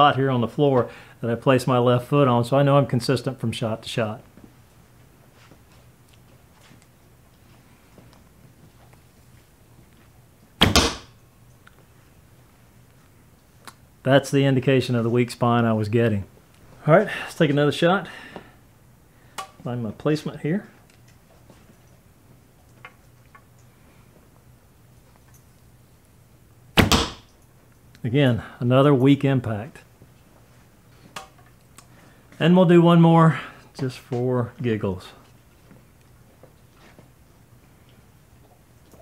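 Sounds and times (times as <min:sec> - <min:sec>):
arrow hitting target: 0:10.6 - 0:11.2, 0:26.8 - 0:27.3.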